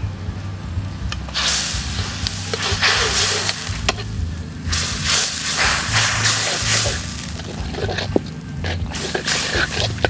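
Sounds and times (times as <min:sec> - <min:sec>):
chicken sizzling in a wok: 0:01.3 - 0:10.0
metal ladle stirring: 0:01.4 - 0:10.0.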